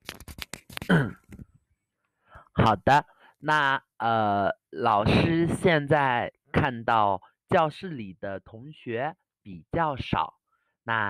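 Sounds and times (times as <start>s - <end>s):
man speaking: 2.4s - 11.0s.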